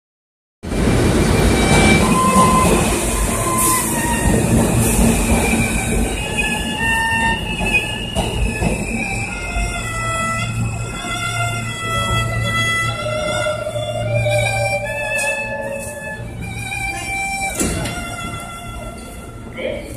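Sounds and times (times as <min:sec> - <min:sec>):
subway train noise: 0:00.6 - 0:19.9
bowed fiddle melody: 0:01.2 - 0:19.9.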